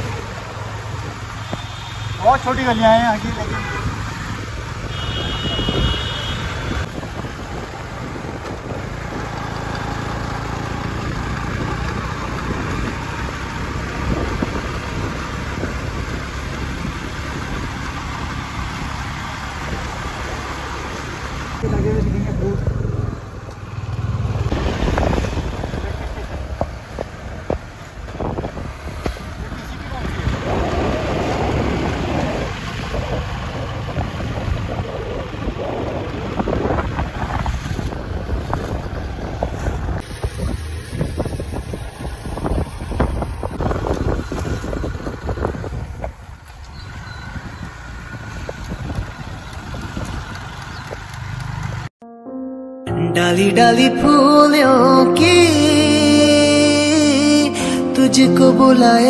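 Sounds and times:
vehicle engine: 0.0 - 52.0
road traffic: 0.0 - 59.0
wind on microphone: 3.9 - 9.4, 24.5 - 51.0.

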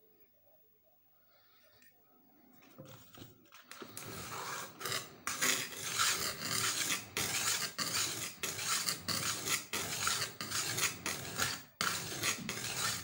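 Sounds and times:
stone scraping on wet whetstone: 4.0 - 13.0.

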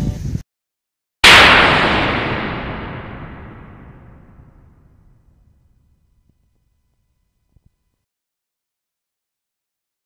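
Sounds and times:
loud crash-like hit: 1.2 - 5.1.

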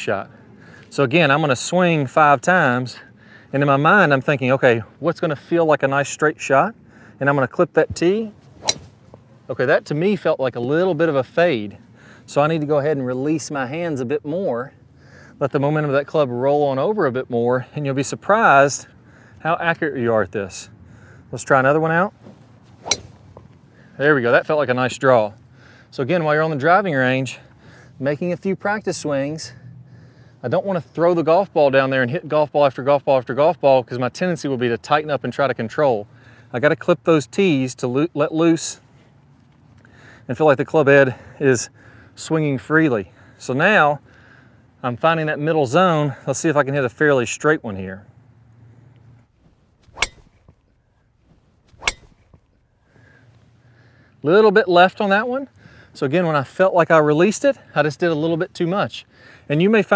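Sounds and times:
golf club clipping tee: 8.6 - 9.2, 22.8 - 23.6, 49.8 - 50.7, 51.7 - 52.6.

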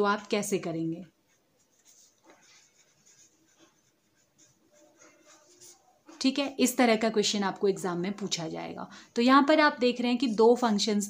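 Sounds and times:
pen scratching on paper: 1.0 - 8.3.

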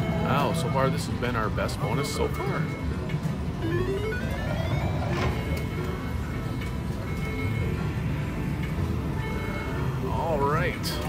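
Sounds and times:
electronic win jingle: 3.6 - 6.4.

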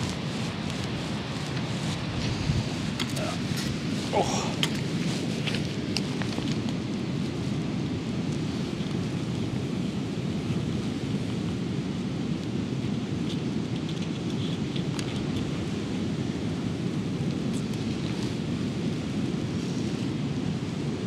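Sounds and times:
wind buffeting microphone: 0.0 - 13.3.

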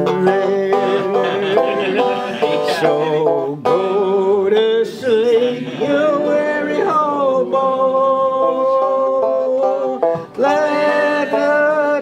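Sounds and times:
banjo picking: 0.0 - 12.0
person singing folk song: 0.0 - 12.0.

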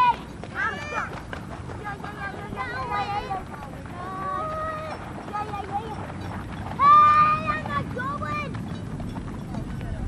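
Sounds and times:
child shouting: 0.0 - 1.1
low outdoor rumble: 0.0 - 10.0.

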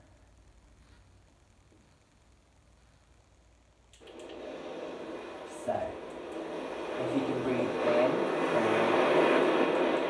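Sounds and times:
ocean waves rushing: 4.2 - 10.0.

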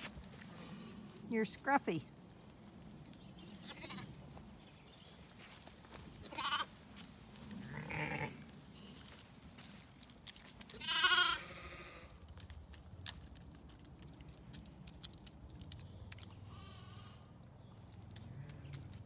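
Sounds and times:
sheep bleating: 3.6 - 4.1, 6.2 - 6.7, 7.6 - 9.0, 10.7 - 12.1.

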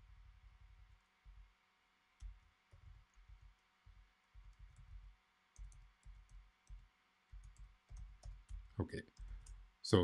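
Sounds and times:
keyboard typing: 4.3 - 9.6.

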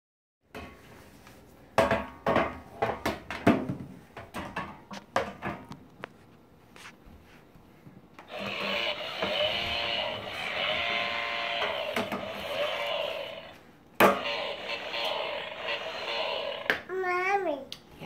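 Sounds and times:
toy trimmer motor buzzing: 8.3 - 13.6, 14.2 - 16.7.

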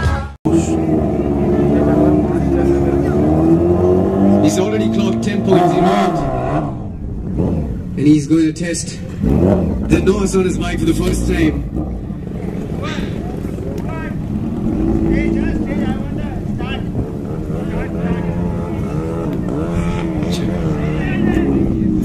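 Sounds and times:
motorcycle engine running at low revs: 0.5 - 5.7, 6.6 - 8.0, 9.1 - 22.0.

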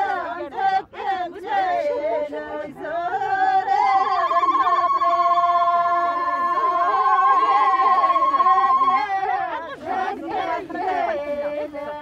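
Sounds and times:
women's voices: 0.0 - 12.0
women ululating: 3.8 - 9.3.

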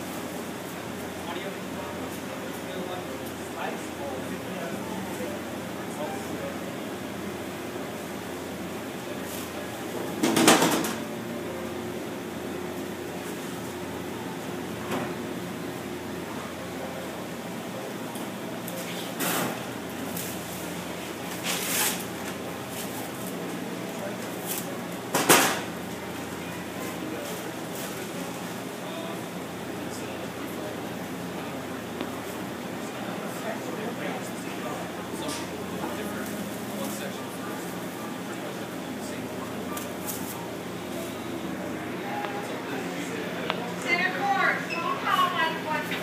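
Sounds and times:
low machine hum: 0.0 - 46.0.

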